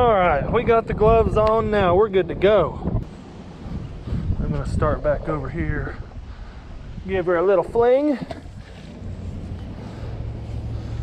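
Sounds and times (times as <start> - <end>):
wind buffeting microphone: 0.0 - 11.0
steady low hum: 8.4 - 11.0.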